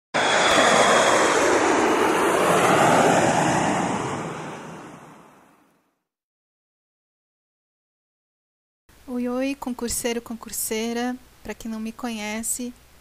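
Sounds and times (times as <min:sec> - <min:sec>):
steady rushing noise: 0:00.2 - 0:05.5.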